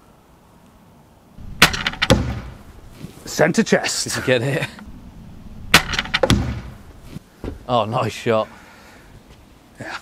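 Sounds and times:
crossbow firing with sharp crack: 0:01.4 - 0:02.7, 0:05.7 - 0:06.9.

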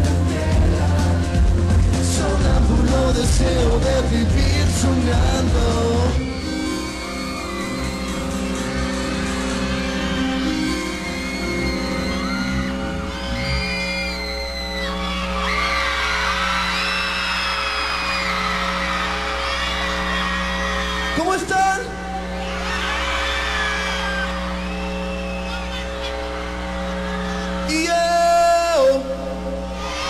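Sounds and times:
pop-rock band playing: 0:00.0 - 0:13.2
audience whooping and screaming: 0:05.9 - 0:29.0, 0:29.6 - 0:30.0.

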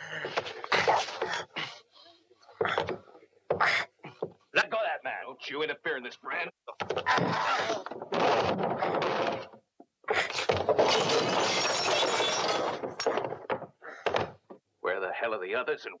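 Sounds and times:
wood breaking: 0:06.8 - 0:09.6, 0:10.4 - 0:14.5
furniture clattering: 0:10.4 - 0:14.6.

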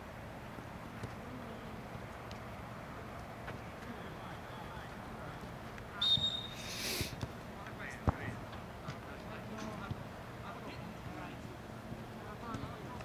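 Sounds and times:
referee's whistle blast: 0:06.0 - 0:06.7.

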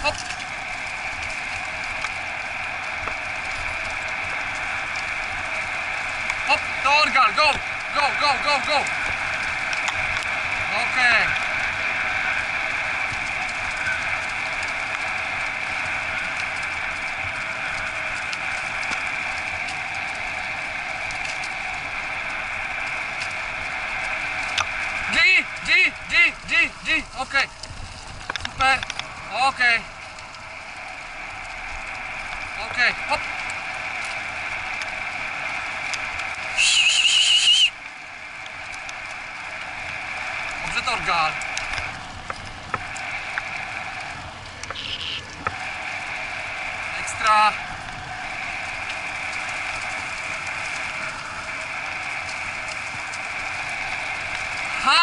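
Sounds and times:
wheels rolling over dirt trail: 0:00.0 - 0:55.0
steady high whistle: 0:31.8 - 0:41.8
short chirping whistles: 0:36.6 - 0:37.7.

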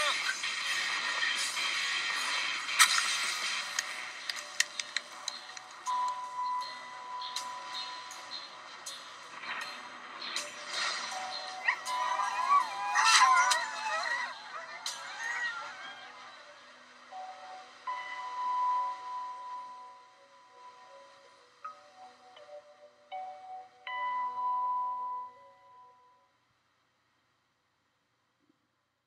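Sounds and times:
chiming music: 0:00.0 - 0:26.4
sled dogs howling: 0:11.4 - 0:16.6.

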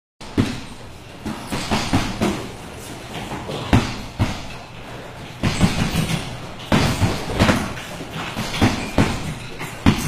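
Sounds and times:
gloved punches landing: 0:08.4 - 0:10.0.

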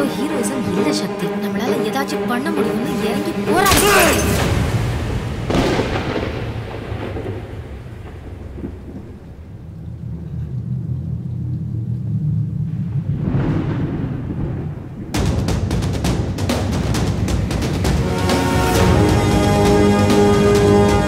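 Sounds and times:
sudden boom: 0:03.7 - 0:16.5
deep sustained rumble: 0:04.3 - 0:15.2.

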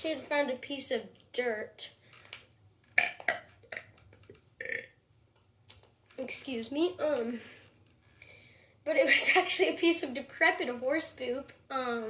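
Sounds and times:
child burping: 0:03.0 - 0:04.0, 0:04.6 - 0:05.0.

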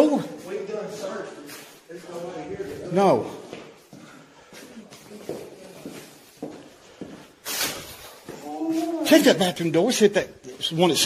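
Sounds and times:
footsteps on hard floor: 0:00.4 - 0:09.0.

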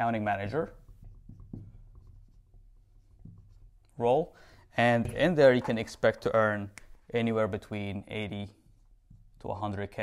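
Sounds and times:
marker writing on a whiteboard: 0:00.0 - 0:04.3, 0:08.1 - 0:10.0.

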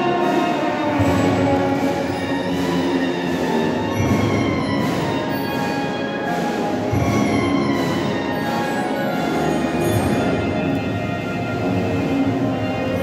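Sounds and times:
brass band funeral march: 0:00.0 - 0:13.0.

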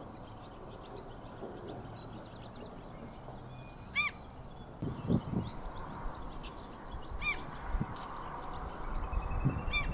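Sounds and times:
outdoor background hiss: 0:00.0 - 0:09.9.

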